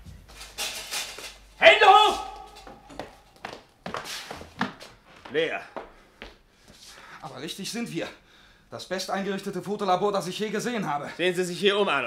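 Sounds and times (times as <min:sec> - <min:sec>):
scraping rustle: 0:00.0 - 0:01.6.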